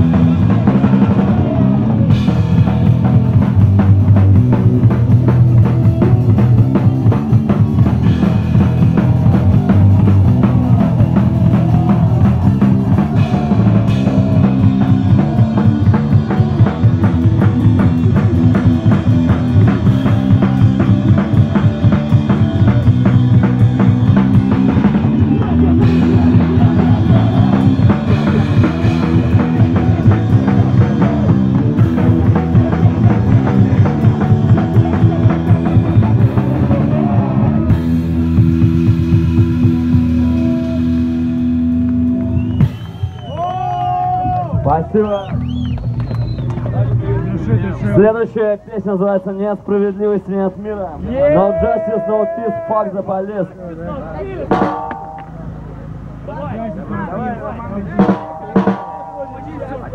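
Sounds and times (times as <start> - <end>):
drum kit with cymbals: 0.0 - 41.7, 42.4 - 43.2, 54.4 - 56.0, 57.9 - 59.9
distorted electric guitar: 0.0 - 42.7, 54.5 - 56.2, 58.0 - 59.9.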